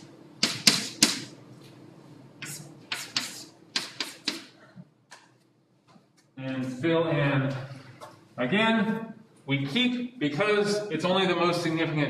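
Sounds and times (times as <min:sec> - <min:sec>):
chalk tapping on blackboard: 0:00.4 - 0:01.3, 0:02.4 - 0:04.6.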